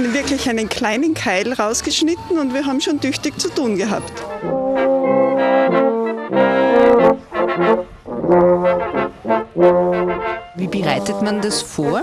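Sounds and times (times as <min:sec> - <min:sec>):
trombones and trumpets playing chords: 0:03.9 - 0:12.0.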